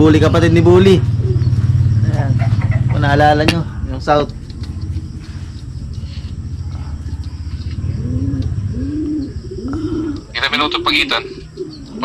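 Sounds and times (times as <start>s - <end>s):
pigeon cooing: 0.0s - 3.9s, 4.6s - 12.0s.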